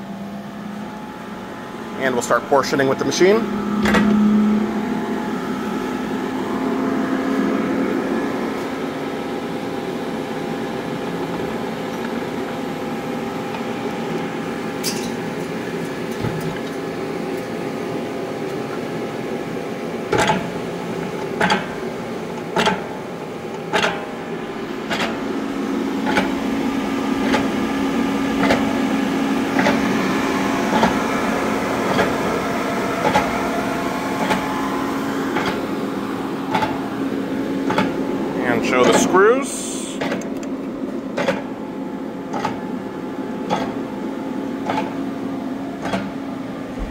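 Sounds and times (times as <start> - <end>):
machine electric hum: 0.0 - 46.9.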